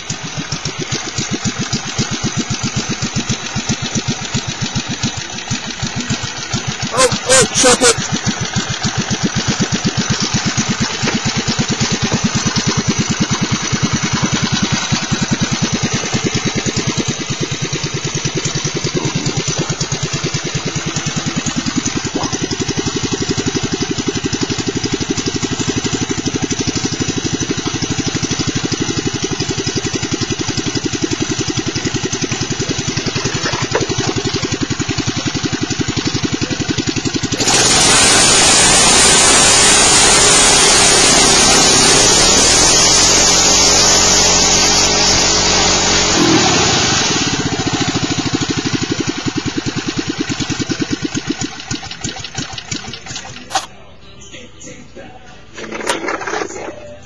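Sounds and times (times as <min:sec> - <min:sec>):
small engine running: 0:00.0 - 0:53.7, 0:55.5 - 0:57.0
loud hiss: 0:37.4 - 0:46.2.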